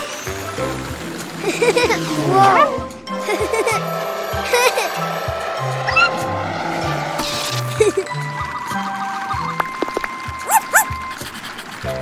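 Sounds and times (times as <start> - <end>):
cartoon car zooming whoosh: 1.3 - 3.1, 5.7 - 7.8.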